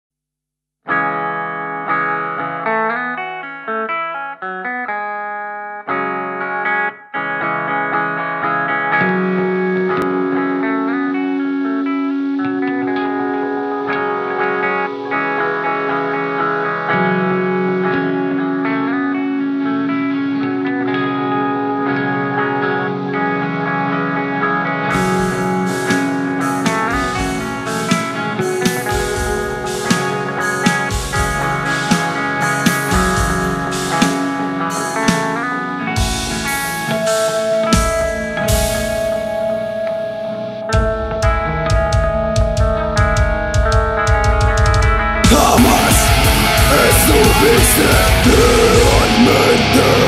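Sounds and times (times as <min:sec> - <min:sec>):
electric guitar picking notes: 0:00.9 - 0:50.0
sustained held notes: 0:24.9 - 0:39.7, 0:45.3 - 0:50.0.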